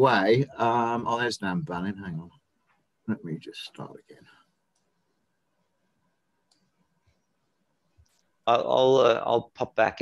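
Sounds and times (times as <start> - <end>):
faint clicks: 4.7 - 5.0, 6.4 - 7.2.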